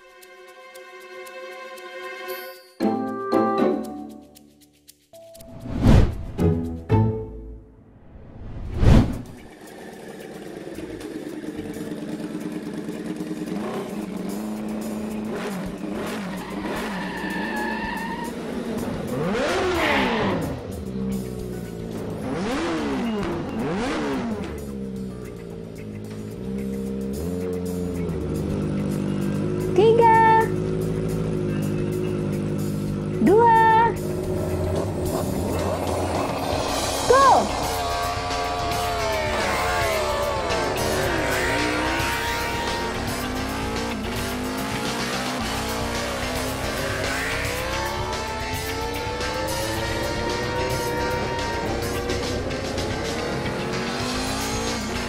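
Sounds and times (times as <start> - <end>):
motorcycle engines revving: 9.2 - 55.0
tyre squeal: 16.2 - 18.8.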